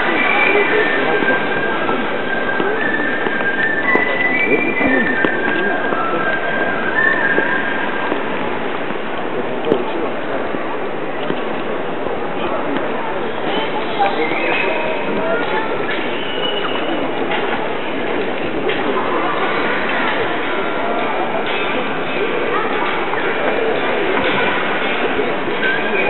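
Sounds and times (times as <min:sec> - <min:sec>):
crowd hubbub: 0:00.0 - 0:26.0.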